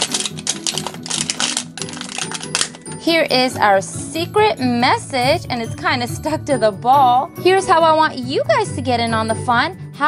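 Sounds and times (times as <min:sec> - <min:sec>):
plastic wrapper crinkling and tearing: 0:00.0 - 0:03.0.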